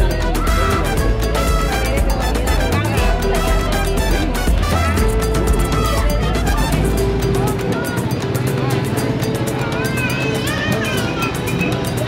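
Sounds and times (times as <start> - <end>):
music with steady beat and bass: 0.0 - 12.0.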